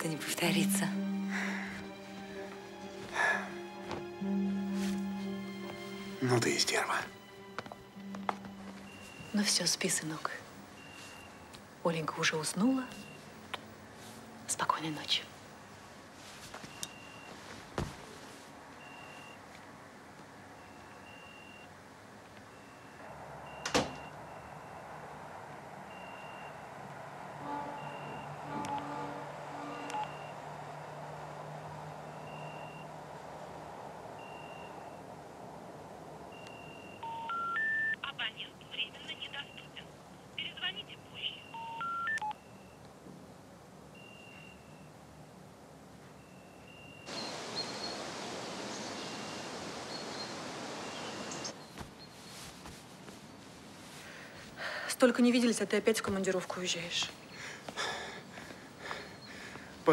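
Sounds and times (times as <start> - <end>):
hissing phone line: 4.2 - 15.3, 16.3 - 19.6, 20.4 - 30.8, 31.9 - 33.1, 34.2 - 35.1, 46.2 - 55.0
short phone beeps: 18.8 - 19.4, 20.6 - 21.7, 29.7 - 30.3, 36.4 - 38.1, 41.2 - 42.8, 44.0 - 44.9
three rising telephone tones: 36.3 - 38.0, 41.4 - 42.8.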